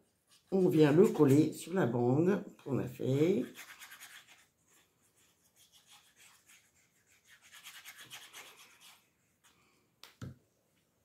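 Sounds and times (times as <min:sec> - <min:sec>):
paper rubbing and scraping: 0:03.1 - 0:09.1.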